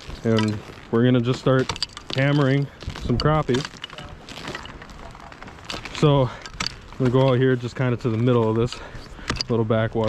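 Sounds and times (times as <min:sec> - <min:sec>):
footsteps in snow on ice: 0:00.0 - 0:10.0.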